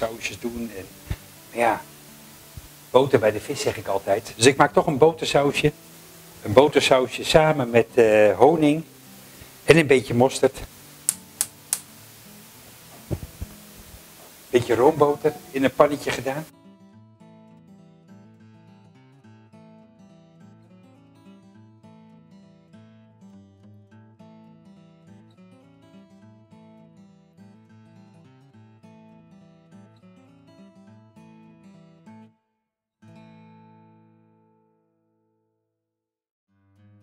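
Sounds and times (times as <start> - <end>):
acoustic guitar picked and strummed: 0.0 - 32.4, 33.0 - 35.5, 36.5 - 37.0.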